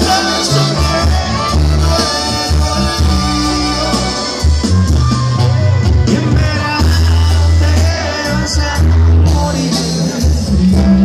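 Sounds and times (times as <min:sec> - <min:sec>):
man singing: 0:00.0 - 0:04.4, 0:05.9 - 0:11.0
brass band playing live: 0:00.0 - 0:11.0
sousaphone bass line: 0:00.0 - 0:11.0.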